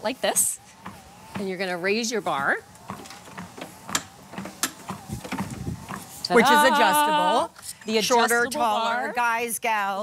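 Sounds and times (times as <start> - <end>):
faint motor whine: 0.0 - 9.2
dull thumps: 0.2 - 6.3
treadmill handlebar clicks and knocks: 0.3 - 6.2.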